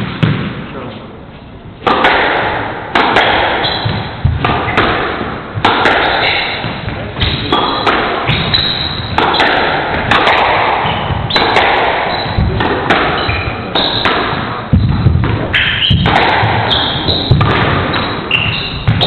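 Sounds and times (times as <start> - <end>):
squash ball hits: 0.0 - 0.7, 1.8 - 19.0
sneakers squeaking on wooden floor: 3.5 - 4.8, 6.0 - 19.0.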